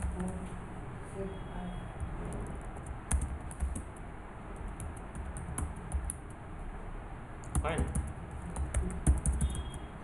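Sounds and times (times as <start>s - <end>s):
typing on computer keyboard: 2.3s - 6.4s, 7.4s - 9.8s.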